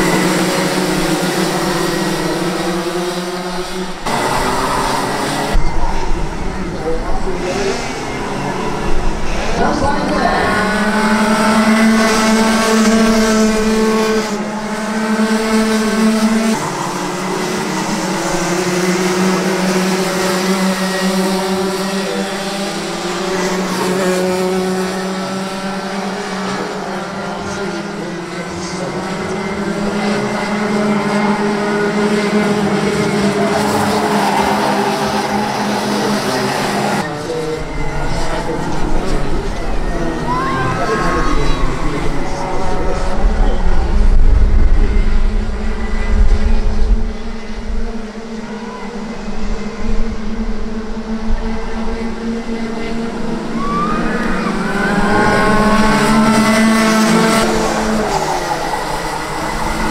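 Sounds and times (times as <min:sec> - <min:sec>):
kart engines buzzing: 0:00.0 - 0:59.9.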